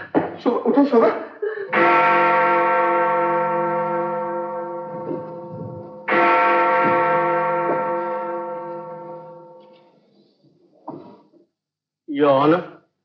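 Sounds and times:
large bell striking: 1.7s - 9.8s.

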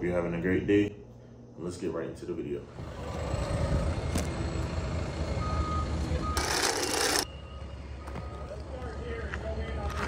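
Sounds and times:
heavy machinery engine running: 2.8s - 7.6s
forklift reversing beep: 5.1s - 8.6s.

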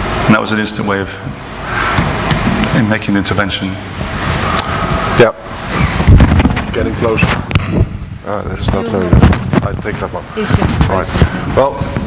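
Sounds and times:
microphone handling rustling: 5.6s - 12.0s
microphone knock: 5.9s - 12.0s.

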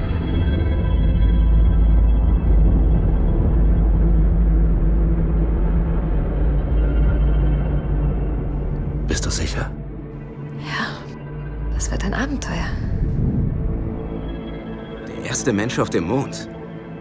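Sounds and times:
dark droning music: 0.0s - 17.0s
deep rumble of rocket lifting off: 12.7s - 14.1s.

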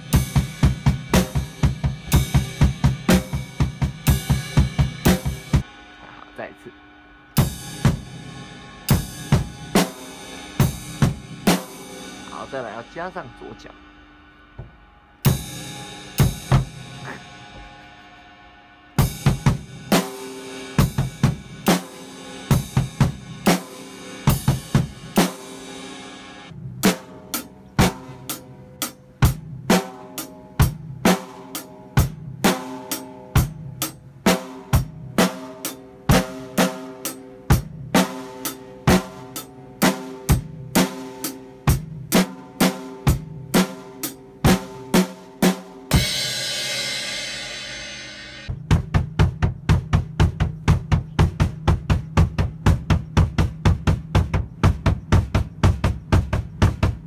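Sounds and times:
drum kit steady beat: 0.0s - 6.8s, 7.4s - 18.0s, 18.9s - 57.0s.

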